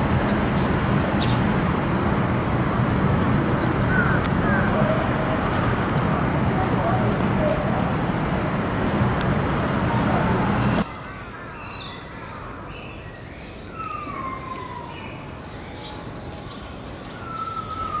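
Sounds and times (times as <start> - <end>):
distant siren wailing: 0.0 - 10.9, 13.8 - 15.3, 17.2 - 18.0
indistinct voices: 0.0 - 10.9
city background noise: 0.0 - 18.0.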